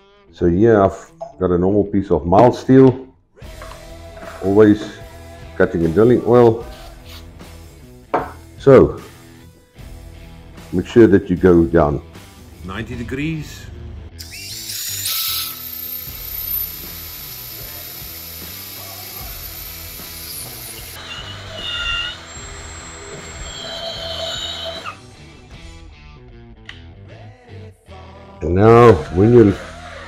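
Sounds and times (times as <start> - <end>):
drill cutting through steel: 14.2 - 25.4.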